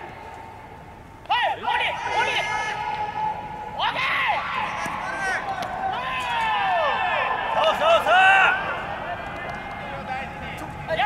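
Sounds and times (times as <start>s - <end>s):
indoor ballpark background noise: 0.0s - 11.0s
man shouting: 1.3s - 2.8s.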